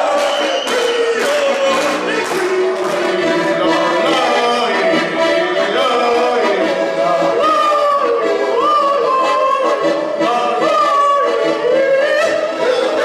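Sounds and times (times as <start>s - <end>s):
accordion chords: 0.0s - 13.0s
man singing into a microphone: 0.0s - 13.0s.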